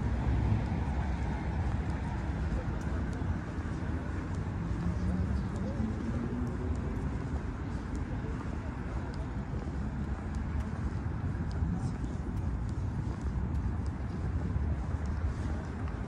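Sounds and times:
faint voices: 0.0s - 16.0s
low rumble of traffic: 0.0s - 16.0s.

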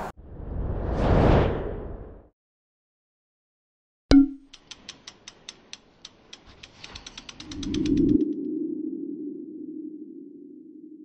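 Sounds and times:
sharp ticks: 4.1s - 8.3s.

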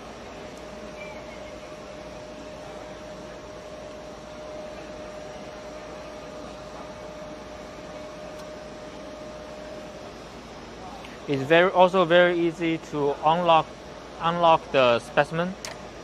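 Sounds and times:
drive motor whine: 0.0s - 16.0s.

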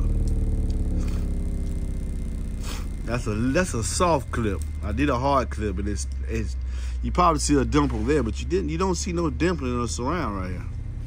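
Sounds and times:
buzzy low subwoofer tone sweep: 0.0s - 11.0s.

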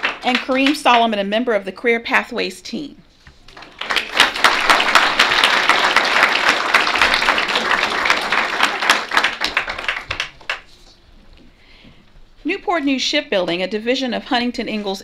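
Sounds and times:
audience applauding: 0.0s - 0.9s, 3.5s - 10.8s.

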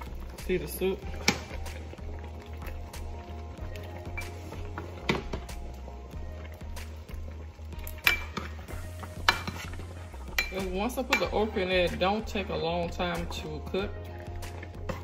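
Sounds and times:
soft background music: 0.0s - 15.0s
metal spoon stirring soup: 1.0s - 15.0s
spoon clinking against pot: 8.0s - 8.6s, 9.3s - 9.7s, 10.4s - 11.4s.

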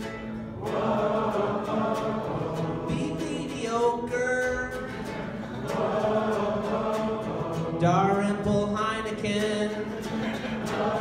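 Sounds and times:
strummed guitalele: 0.0s - 11.0s
group of voices singing: 0.5s - 8.6s, 9.8s - 11.0s.

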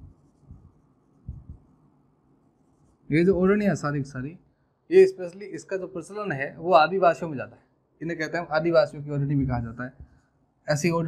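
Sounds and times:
marker writing on whiteboard: 0.0s - 3.6s.

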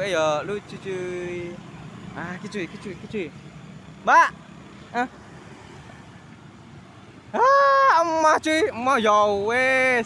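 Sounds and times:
motor scooter passing: 0.0s - 8.4s
traffic noise: 0.0s - 10.0s
person calling out: 4.0s - 5.2s, 7.3s - 9.2s.

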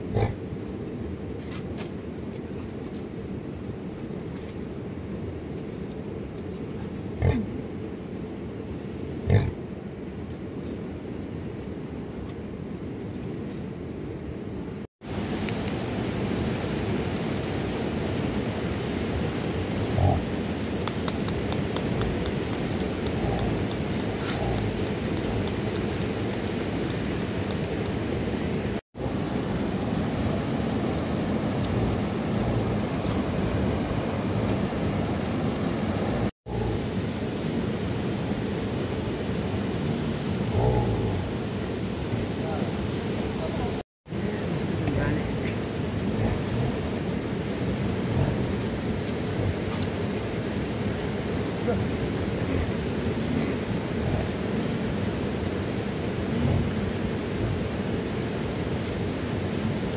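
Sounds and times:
water rushing: 15.0s - 59.9s.

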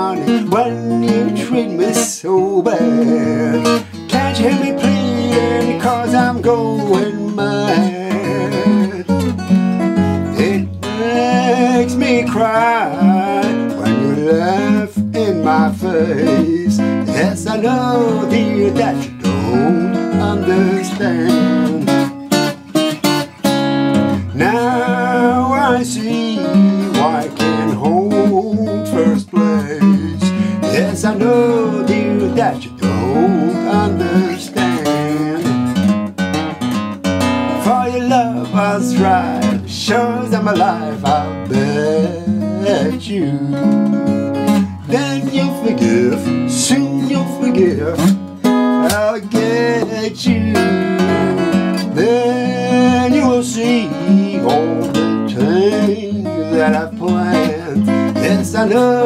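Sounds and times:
fingerpicked acoustic guitar: 0.0s - 59.0s.

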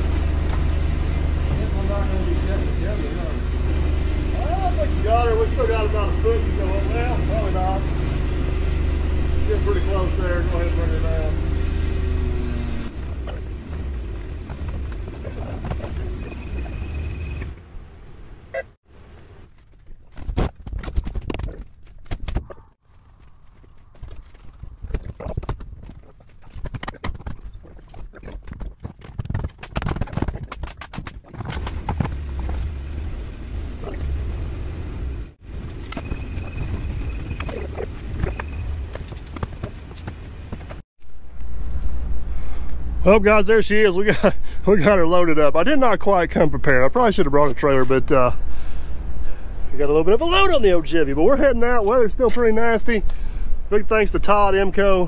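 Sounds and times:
machine humming: 0.0s - 17.7s.

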